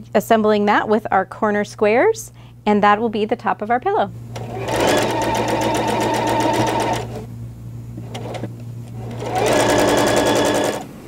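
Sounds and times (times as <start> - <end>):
electric sewing machine stitching: 4.3 - 7.3, 8.0 - 10.9.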